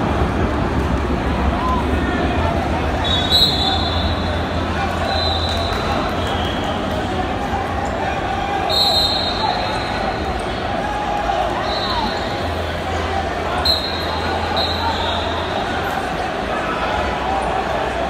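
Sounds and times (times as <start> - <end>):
referee whistle blasts: 3.0 - 6.8, 8.6 - 10.1, 11.6 - 12.3, 13.6 - 15.6.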